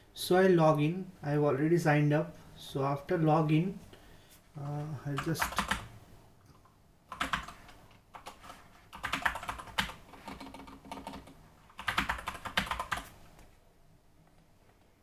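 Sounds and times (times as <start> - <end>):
typing on computer keyboard: 5.2 - 5.9, 7.1 - 13.1.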